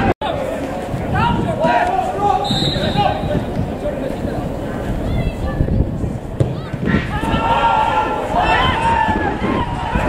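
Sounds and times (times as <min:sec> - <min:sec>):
players shouting: 0:00.0 - 0:05.6, 0:06.4 - 0:10.0
high whistle: 0:02.4 - 0:03.3
ball thuds: 0:06.4 - 0:07.1.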